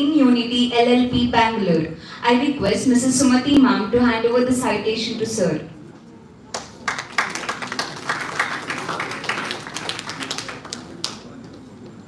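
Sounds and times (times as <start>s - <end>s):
audience clapping: 6.5s - 11.9s.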